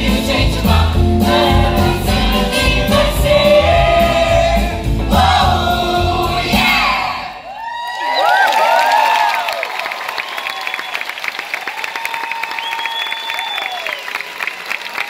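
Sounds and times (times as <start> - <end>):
audience screams and whoops: 6.8 - 15.0
steady applause: 7.5 - 15.0.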